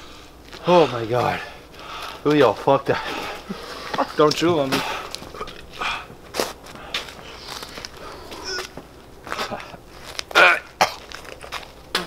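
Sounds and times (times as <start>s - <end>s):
footsteps and shuffling: 0.0s - 12.0s
man's loud vocal outburst: 10.3s - 10.8s.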